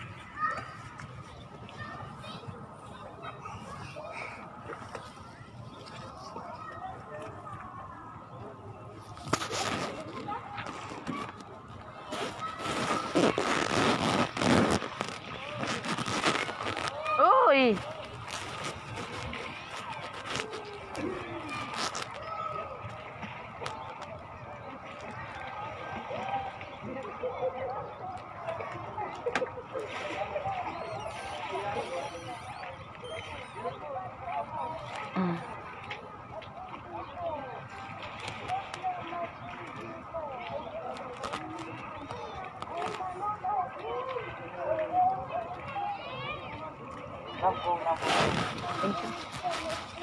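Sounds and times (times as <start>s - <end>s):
distant indistinct voices: 0.0s - 50.0s
distant people talking and calling: 0.0s - 50.0s.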